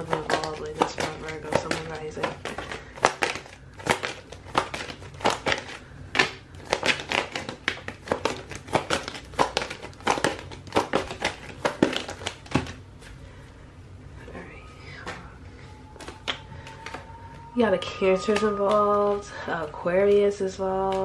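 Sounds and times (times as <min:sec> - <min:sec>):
cards being shuffled: 0:00.0 - 0:13.2, 0:16.0 - 0:17.1.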